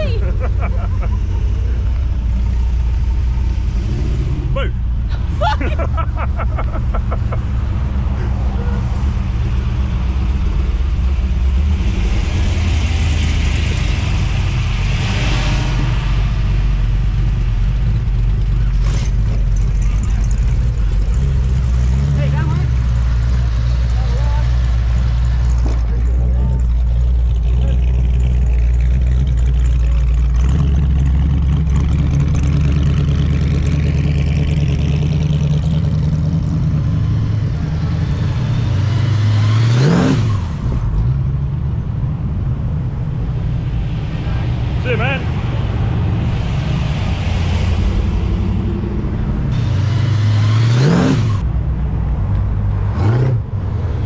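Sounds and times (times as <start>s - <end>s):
engine revving: 0.0s - 51.6s, 52.2s - 54.0s
car engines rumbling past: 0.0s - 54.0s.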